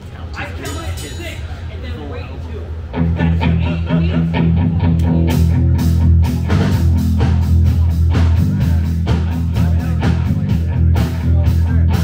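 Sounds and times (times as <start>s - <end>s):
rock trio playing: 2.9s - 12.0s
upright bass low notes: 2.9s - 12.0s.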